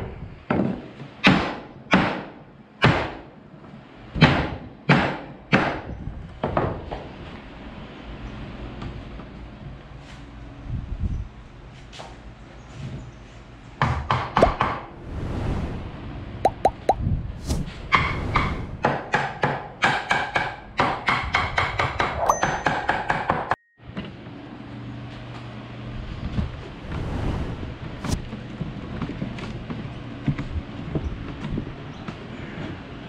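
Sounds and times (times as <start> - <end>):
hammer striking nails into wood: 0.5 - 3.2, 4.2 - 6.6, 18.8 - 23.6.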